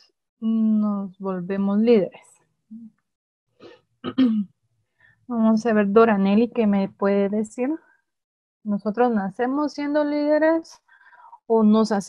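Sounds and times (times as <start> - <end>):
person clearing throat: 4.0 - 4.6.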